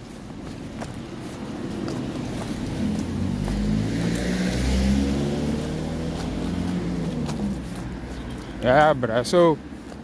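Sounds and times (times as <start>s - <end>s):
car driving past: 2.0s - 8.4s.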